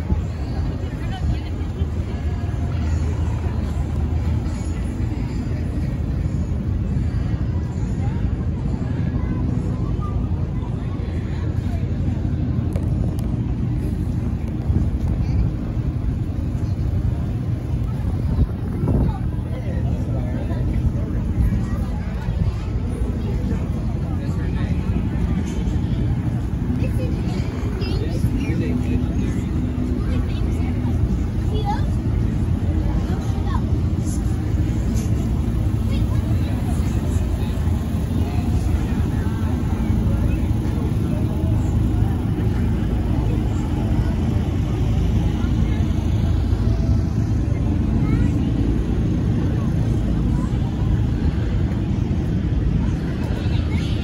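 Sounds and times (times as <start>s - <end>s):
crowd talking: 0.0s - 54.0s
steady low rumble: 0.0s - 54.0s.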